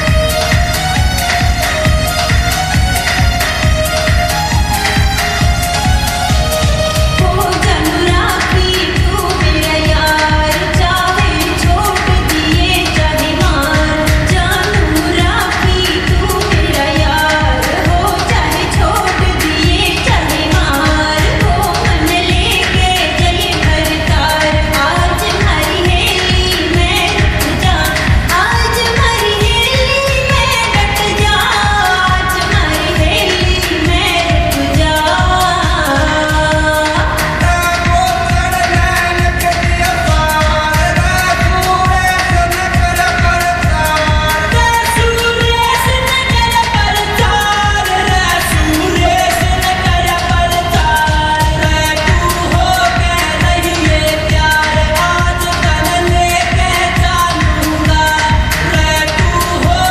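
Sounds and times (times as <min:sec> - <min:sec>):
steady dense beat: 0:00.0 - 0:59.9
person singing: 0:04.9 - 0:59.9.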